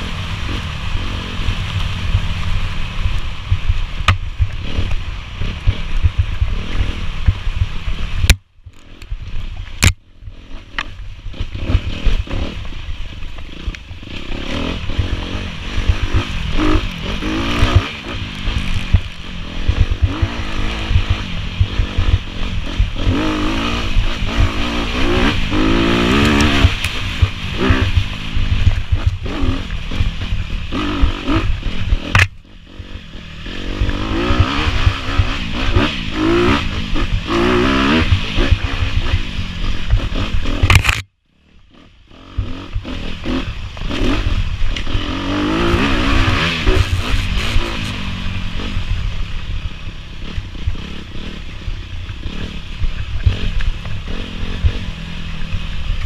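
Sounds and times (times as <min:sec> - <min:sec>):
off-road engine revving: 0:00.0 - 0:09.1, 0:09.8 - 0:56.0
wind buffeting on camera: 0:00.0 - 0:41.1
camera rattle: 0:40.6 - 0:41.1.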